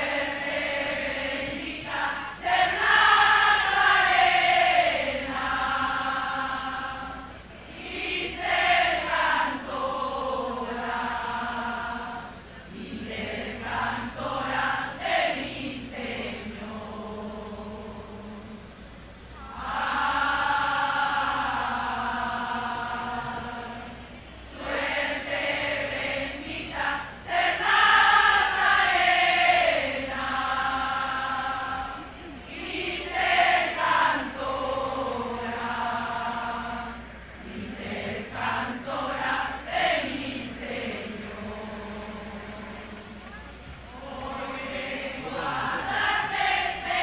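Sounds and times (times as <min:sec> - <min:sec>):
group singing a hymn: 0:00.0 - 0:47.0.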